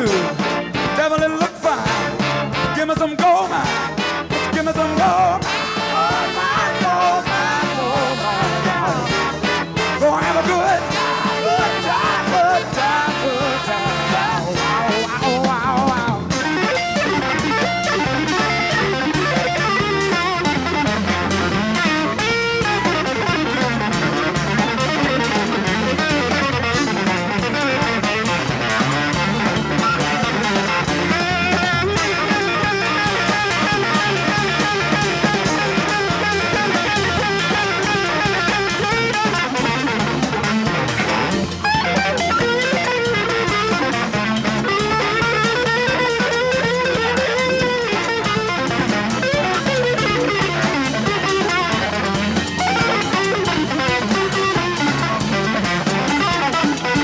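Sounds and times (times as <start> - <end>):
electric guitar solo: 0.0 - 57.0
live band playing: 0.0 - 57.0.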